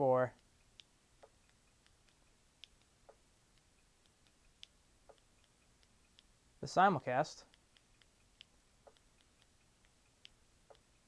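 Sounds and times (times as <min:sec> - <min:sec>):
faint remote clicks: 0:00.2 - 0:11.0.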